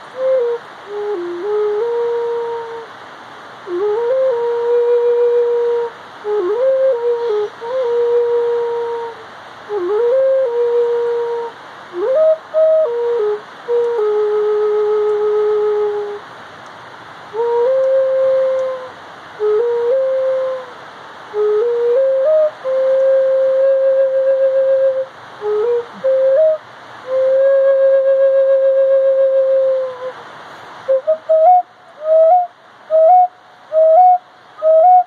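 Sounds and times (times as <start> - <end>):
solo flute melody: 0.0 - 3.0, 3.6 - 16.2, 17.3 - 35.0.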